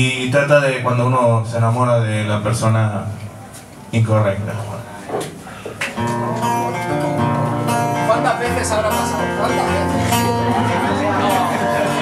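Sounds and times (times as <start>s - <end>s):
acoustic guitar strumming: 5.9s - 12.0s.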